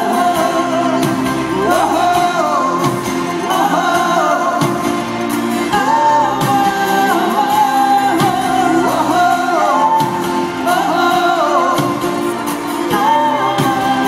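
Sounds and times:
live rock band: 0.0 - 14.0.

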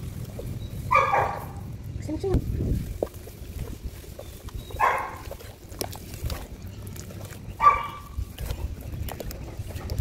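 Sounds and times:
dog barking: 0.9 - 1.6, 4.8 - 5.3, 7.6 - 8.1.

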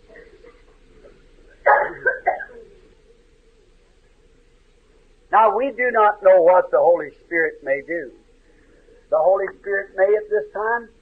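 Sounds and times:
recording hiss and hum: 0.0 - 11.0
person coughing: 1.6 - 2.7.

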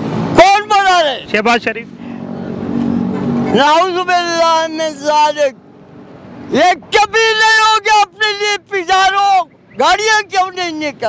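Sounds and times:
vehicle engine passing by: 0.0 - 5.1
man speaking: 0.4 - 2.0, 3.5 - 5.6, 6.5 - 11.0.

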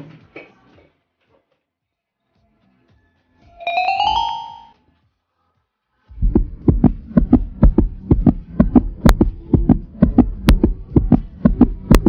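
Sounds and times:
deep rhythmic thuds: 6.2 - 12.0.

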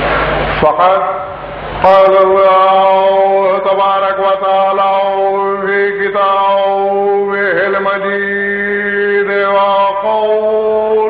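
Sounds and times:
man chanting over loudspeakers: 0.6 - 11.0.

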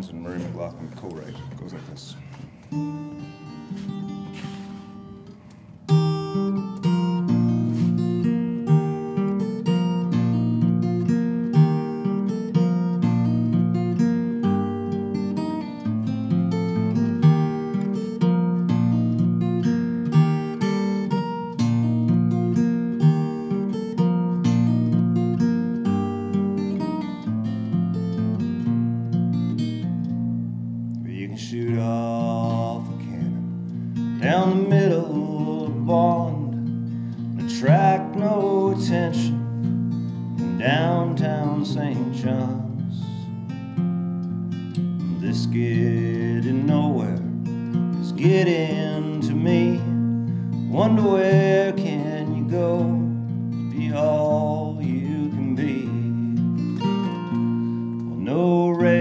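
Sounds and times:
fingerstyle acoustic guitar: 0.0 - 59.0.

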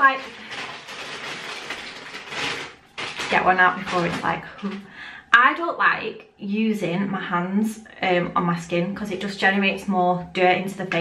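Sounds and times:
packet rustling and rattling: 0.0 - 4.9.

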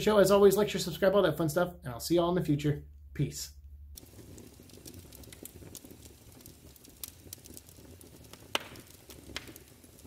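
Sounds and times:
wood fire crackling: 0.0 - 10.0.

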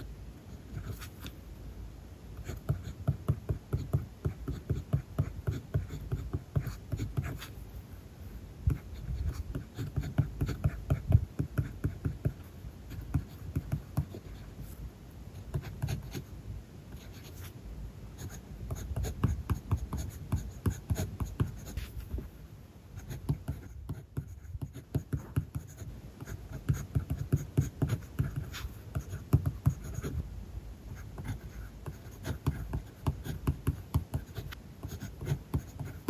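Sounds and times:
pencil writing on paper: 0.5 - 1.3, 2.4 - 7.6, 8.7 - 14.8, 15.5 - 16.3, 16.9 - 17.5, 18.2 - 22.2, 23.0 - 30.2, 31.0 - 36.0.

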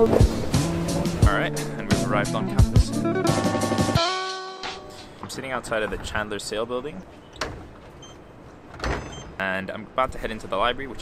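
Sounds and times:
outdoor background noise: 5.0 - 11.0.

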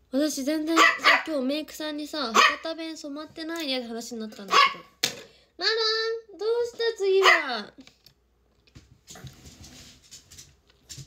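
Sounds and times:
rustling: 8.6 - 11.0.

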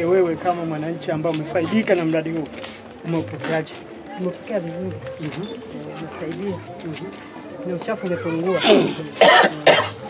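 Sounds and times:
woman coughing: 8.6 - 10.0.

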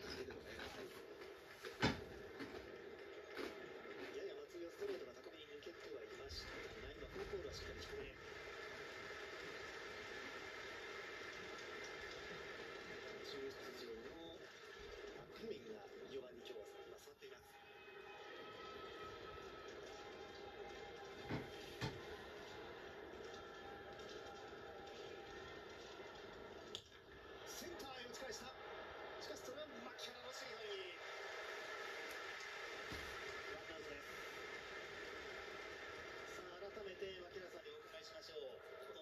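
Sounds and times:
ballpark crowd ambience through tv: 0.0 - 39.0.

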